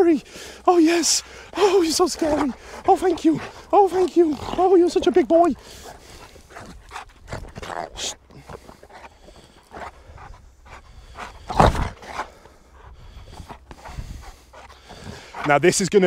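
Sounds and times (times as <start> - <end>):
dog panting: 0.0 - 16.0.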